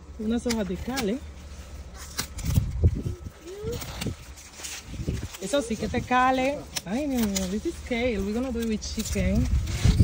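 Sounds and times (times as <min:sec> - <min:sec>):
leaves rustling: 0:00.0 - 0:10.0
kale stalks snapping: 0:01.8 - 0:10.0.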